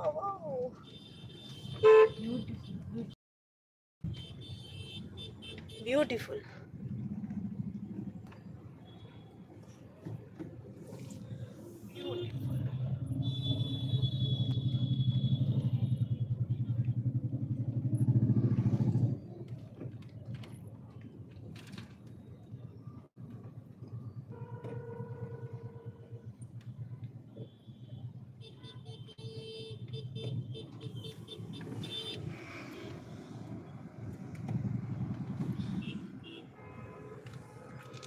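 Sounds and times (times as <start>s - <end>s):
car engine and road rumble: 4.0s - 38.0s.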